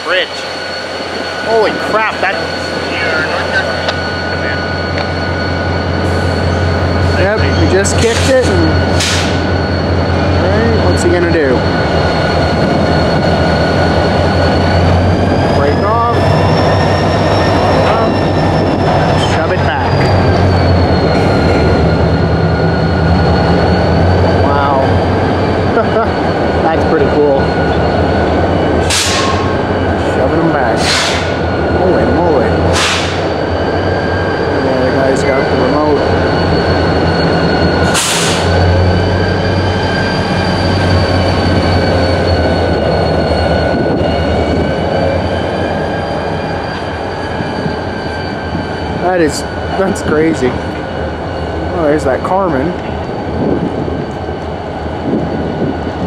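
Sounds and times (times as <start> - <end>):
steady high whine: 0.0 - 54.5
diesel locomotive rumbling: 0.0 - 56.0
short air hisses: 38.0 - 38.5.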